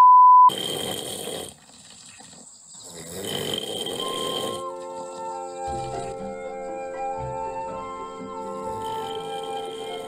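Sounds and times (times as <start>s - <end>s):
men snoring: 0.5s - 6.2s, 7.5s - 10.0s
music: 4.0s - 10.0s.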